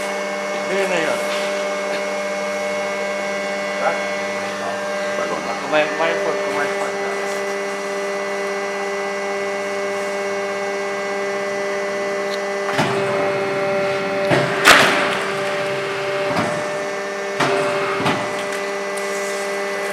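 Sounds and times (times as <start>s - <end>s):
hydraulic pump motor hum: 0.0s - 19.9s.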